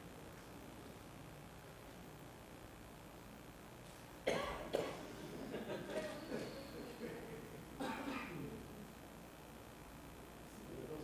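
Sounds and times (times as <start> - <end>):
person coughing: 4.3 - 5.3, 7.8 - 8.5.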